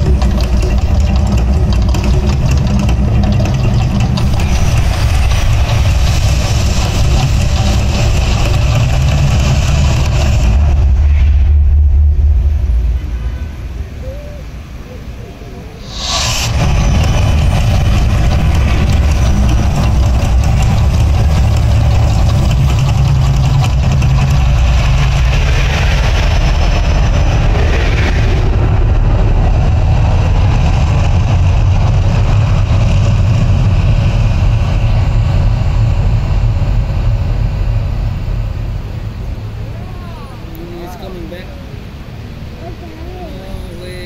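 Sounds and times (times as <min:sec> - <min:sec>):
gas fire jets hissing: 0:00.0 - 0:11.9, 0:14.4 - 0:31.7
deep rumble: 0:00.0 - 0:44.0.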